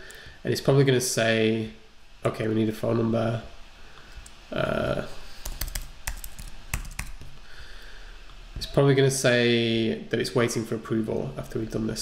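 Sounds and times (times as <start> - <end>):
computer keyboard key clicks: 5.4 - 7.3.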